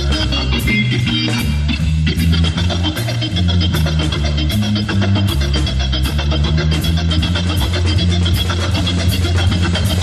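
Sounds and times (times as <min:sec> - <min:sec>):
drums and cymbals: 0:00.0 - 0:10.0
low moving bass line: 0:00.0 - 0:10.0.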